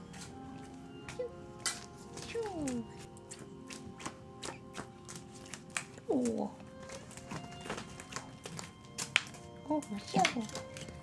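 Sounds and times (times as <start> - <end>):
soft background music: 0.0 - 11.0
cat paws scampering on wooden floor: 0.1 - 11.0.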